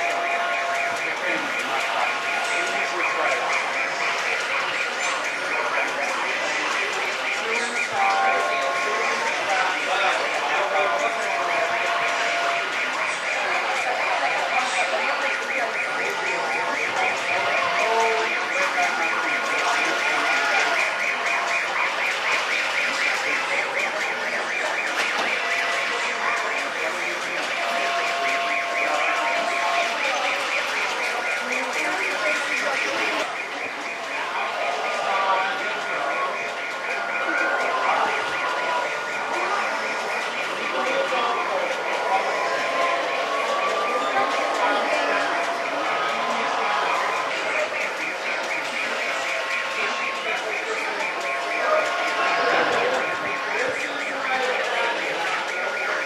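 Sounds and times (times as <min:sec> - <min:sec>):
indistinct chatter: 0:00.0 - 0:56.0
murmur of crowd: 0:00.0 - 0:56.0.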